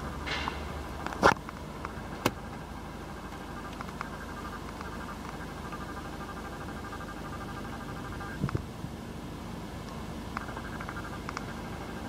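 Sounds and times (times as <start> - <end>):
diesel engine idling: 0.0 - 12.0
dashboard button clicks: 1.1 - 2.6.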